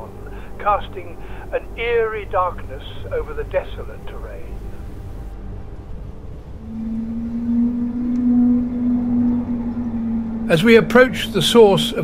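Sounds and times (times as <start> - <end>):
deep noisy rumble: 0.0 - 12.0
low drone hum: 0.0 - 12.0.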